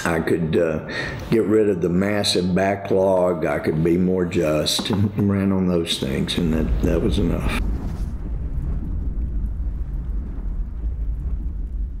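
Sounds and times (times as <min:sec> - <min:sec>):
deep bass rumble: 0:06.2 - 0:12.0.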